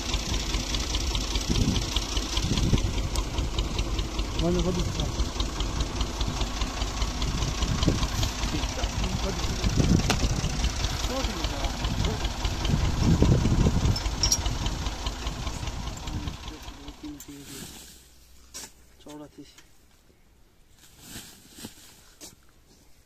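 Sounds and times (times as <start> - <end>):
tractor engine idling with knock: 0.0 - 19.7.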